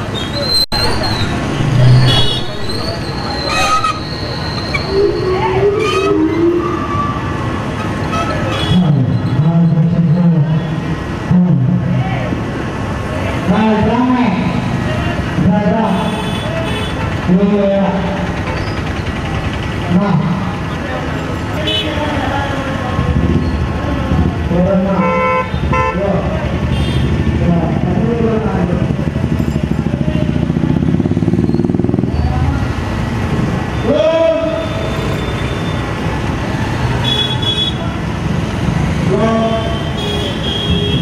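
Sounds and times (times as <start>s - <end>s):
people's voices and shouts: 0.0s - 10.6s
vehicle engines running: 0.0s - 41.0s
vehicle horns tooting: 0.1s - 9.2s, 15.8s - 17.3s, 21.6s - 22.3s, 24.9s - 27.3s, 36.9s - 38.0s, 39.3s - 41.0s.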